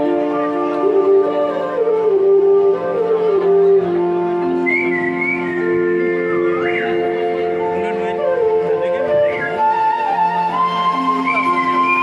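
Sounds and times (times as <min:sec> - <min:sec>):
bamboo flute music: 0:00.0 - 0:12.0.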